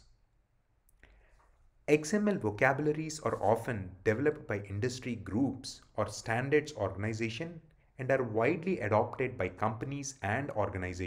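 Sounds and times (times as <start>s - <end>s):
person speaking: 1.7s - 11.0s.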